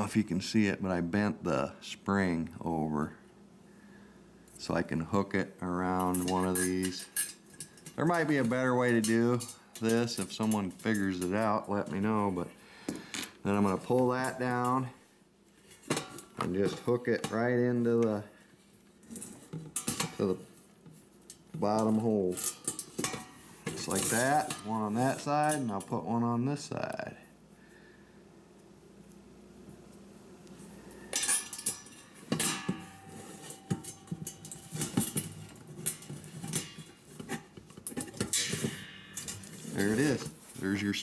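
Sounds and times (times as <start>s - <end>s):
metal spring clinking: 5.8s - 12.0s, 21.3s - 26.0s, 30.9s - 40.3s.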